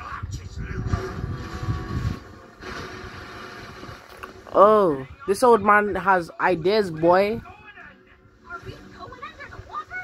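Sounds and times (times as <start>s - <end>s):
dramatic music from television: 0.0s - 10.0s.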